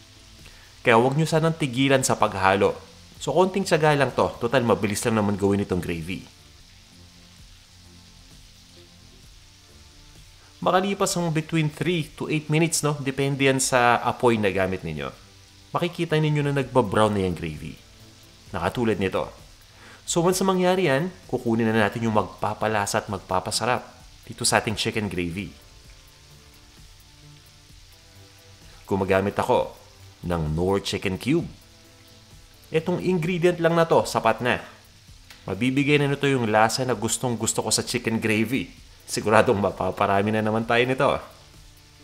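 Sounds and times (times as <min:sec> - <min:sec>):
chicken frying in oil: 0:00.0 - 0:42.0
soft background music: 0:00.0 - 0:42.0.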